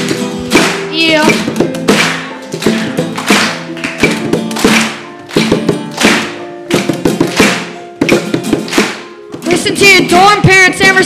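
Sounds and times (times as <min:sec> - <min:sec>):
percussive taps and thunks: 0:00.0 - 0:09.5
keyboard: 0:00.0 - 0:11.0
strummed acoustic guitar: 0:00.0 - 0:11.0.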